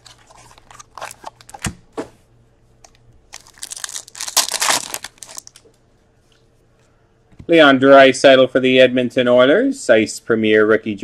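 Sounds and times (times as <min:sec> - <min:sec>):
card pack wrapper tearing: 0:00.0 - 0:01.7, 0:03.3 - 0:05.6.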